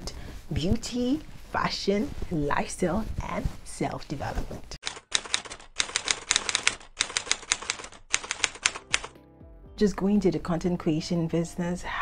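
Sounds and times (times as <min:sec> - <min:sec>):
rapid keyboard key clacks: 0:04.8 - 0:09.2.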